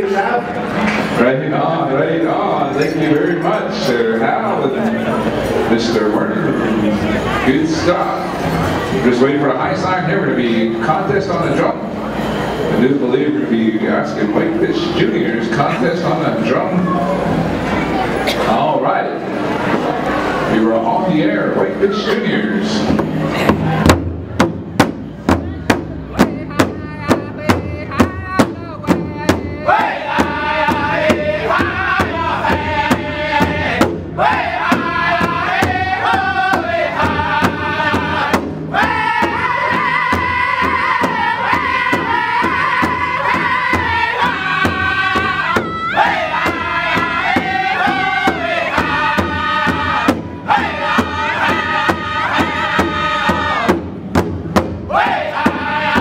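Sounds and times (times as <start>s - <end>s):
large drum beaten in unison: 22.8s - 56.0s
man singing high-pitched: 26.1s - 53.8s, 54.9s - 56.0s.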